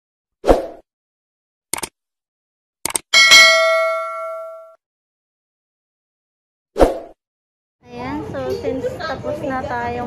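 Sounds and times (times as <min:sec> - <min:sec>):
quick clicks: 0:01.7 - 0:02.0, 0:02.8 - 0:03.1
bell-like ding: 0:03.2 - 0:04.8.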